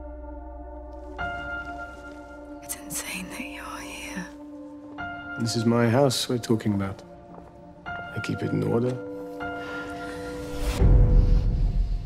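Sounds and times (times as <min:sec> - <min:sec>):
person whispering: 0:02.6 - 0:04.4.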